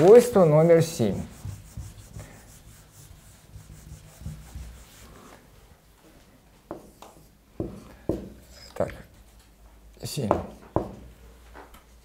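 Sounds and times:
eraser rubbing on whiteboard: 0:00.8 - 0:05.4.

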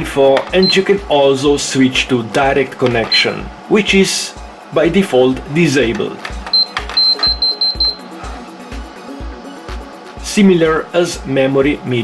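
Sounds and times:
background music with steady beat: 0:00.0 - 0:12.0
printer panel beeping: 0:06.4 - 0:08.1.

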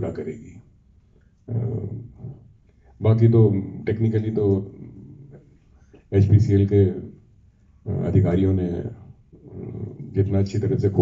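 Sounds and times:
man speaking through microphone: 0:00.0 - 0:00.6, 0:01.5 - 0:02.3, 0:03.0 - 0:05.3, 0:06.1 - 0:07.1, 0:07.9 - 0:11.0
drawn-out vocal sound: 0:01.5 - 0:02.4, 0:07.9 - 0:11.0.

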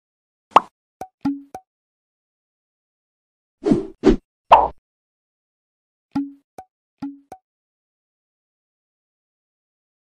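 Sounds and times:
cartoon pops: 0:00.5 - 0:01.4.

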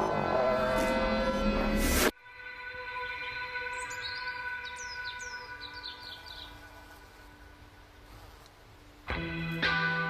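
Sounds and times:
steady high-pitched tone: 0:00.0 - 0:03.0
birds chirping: 0:03.2 - 0:07.9.

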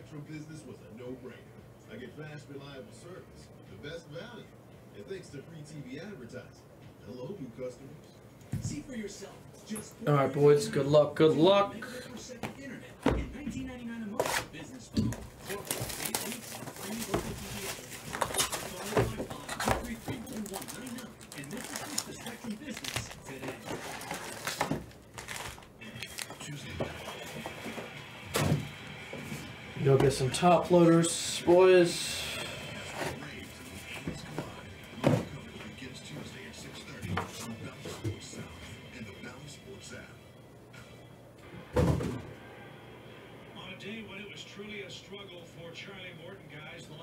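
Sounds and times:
room noise: 0:00.0 - 0:46.9
cardboard and wrapping rustling: 0:14.2 - 0:29.4, 0:32.8 - 0:36.3
cardboard boxes knocking: 0:18.2 - 0:20.2
faint indistinct voices: 0:31.6 - 0:41.2.

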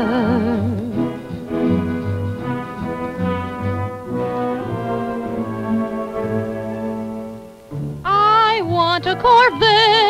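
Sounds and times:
detached bass notes: 0:00.0 - 0:10.0
orchestral music with brass melody: 0:00.2 - 0:10.0.

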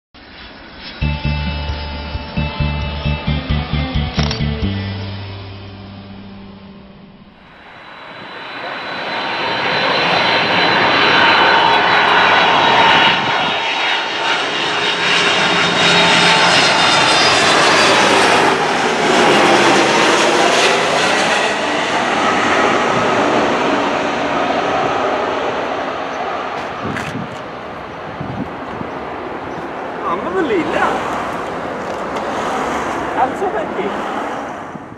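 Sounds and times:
jet airliner whining roar: 0:00.2 - 0:02.8, 0:04.7 - 0:34.9.

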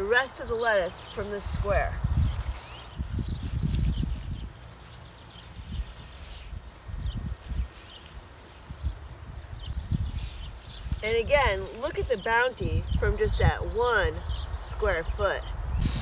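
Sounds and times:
wind on microphone: 0:00.0 - 0:04.8, 0:05.4 - 0:16.0.

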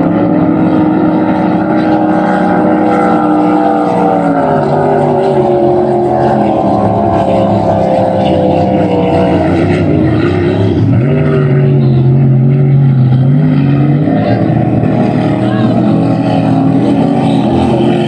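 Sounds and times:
racing boat engines at high revs: 0:00.0 - 0:18.0.

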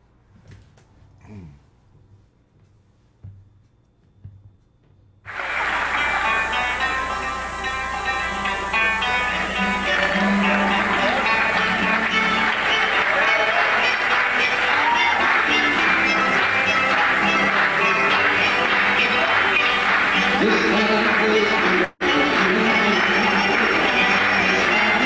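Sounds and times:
folk band with acoustic guitars: 0:05.3 - 0:21.4.

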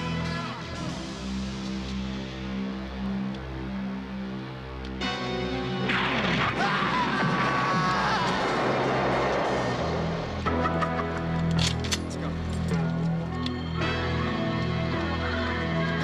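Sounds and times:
action music: 0:00.0 - 0:16.0
explosion rumble: 0:05.8 - 0:10.5.

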